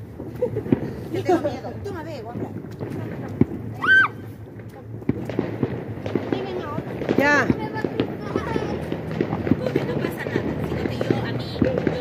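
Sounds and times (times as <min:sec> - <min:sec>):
fireworks crackling and popping: 0:00.0 - 0:12.0.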